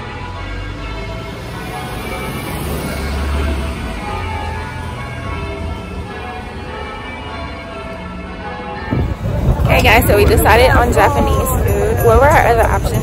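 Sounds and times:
bells ringing: 0.0s - 13.0s.

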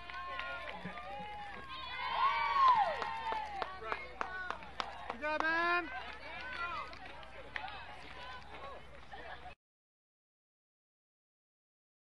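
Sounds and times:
players cheering: 0.0s - 9.0s.

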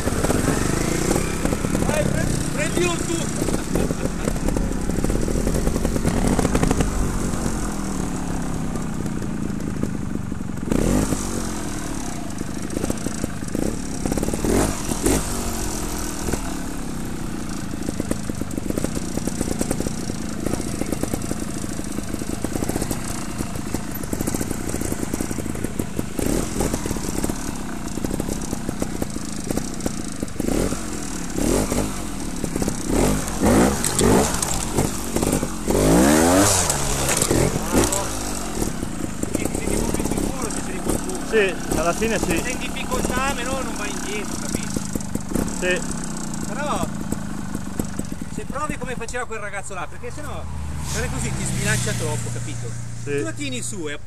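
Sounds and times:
motorcycle engine idling: 0.0s - 54.0s
motorcycle throttle blips: 0.0s - 54.0s.

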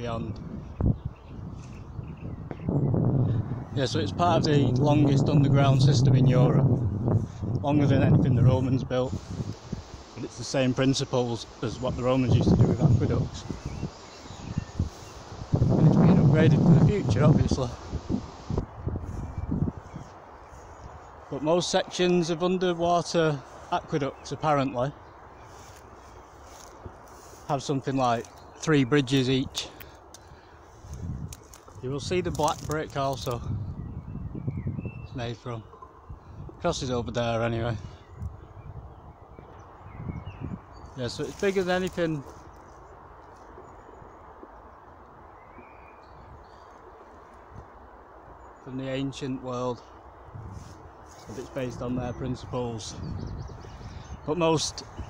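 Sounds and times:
man talking: 0.0s - 0.4s, 3.7s - 6.8s, 7.6s - 9.2s, 10.1s - 13.6s, 15.6s - 17.9s, 21.3s - 25.0s, 27.3s - 29.8s, 31.8s - 33.6s, 35.1s - 35.7s, 36.6s - 38.0s, 41.0s - 42.4s, 48.6s - 49.9s, 51.2s - 53.2s, 54.2s - 55.0s
wind buffeting microphone: 0.0s - 55.0s
faint hiss: 8.8s - 18.6s
faint bird chirps: 17.7s - 21.3s, 45.4s - 47.4s.

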